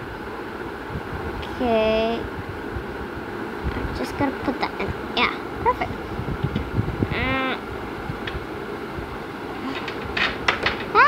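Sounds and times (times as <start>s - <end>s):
girl exclaiming: 7.1s - 7.7s.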